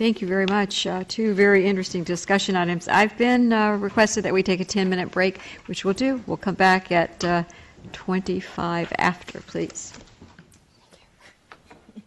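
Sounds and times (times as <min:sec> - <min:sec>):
faint clicks and knocks of people moving: 0:00.0 - 0:12.0.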